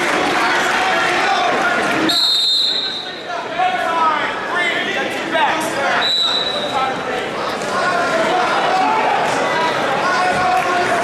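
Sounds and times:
crowd shouting: 0.0 - 11.0
referee's whistle blast: 2.1 - 3.2, 6.0 - 6.8.

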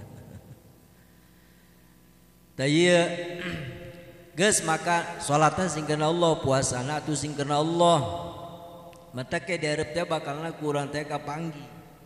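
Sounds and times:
faint low hum: 0.0 - 12.0
man's voice: 2.6 - 8.5, 9.2 - 11.8.

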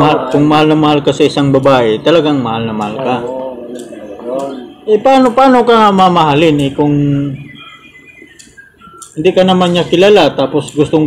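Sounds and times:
faint bird chirps: 6.2 - 10.5.

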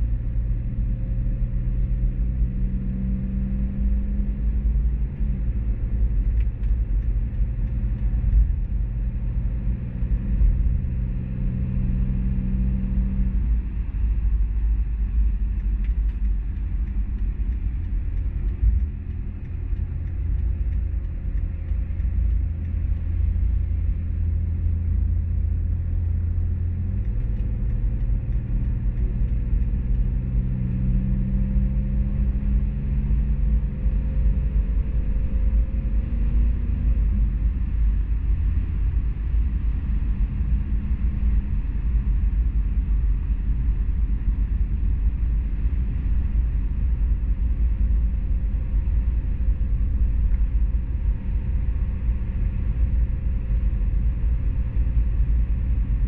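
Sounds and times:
car road and drivetrain rumble: 0.0 - 56.0.

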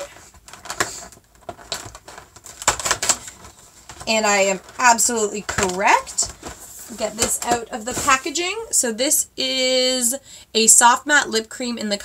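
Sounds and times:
cardboard tearing with clicks: 0.4 - 3.4.

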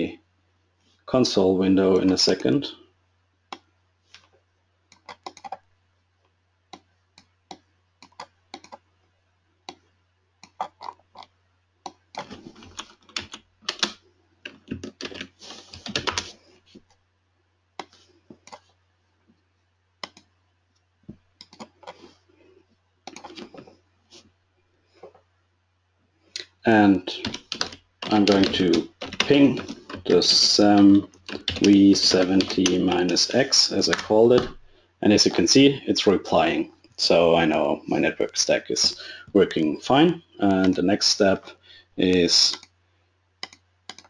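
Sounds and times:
man talking: 1.1 - 2.8, 26.4 - 27.4, 28.0 - 42.6
typing on computer keyboard: 5.0 - 5.6, 7.5 - 8.8, 11.9 - 16.3, 27.2 - 33.3, 43.4 - 44.0.

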